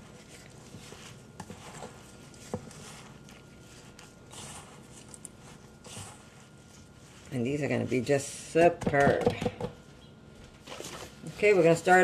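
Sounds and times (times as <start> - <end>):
hands squishing dough: 0.0 - 10.0, 10.6 - 12.0.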